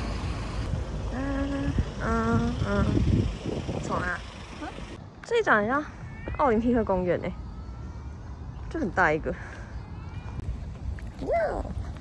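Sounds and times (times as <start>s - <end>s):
road traffic rumbling: 0.0s - 6.1s.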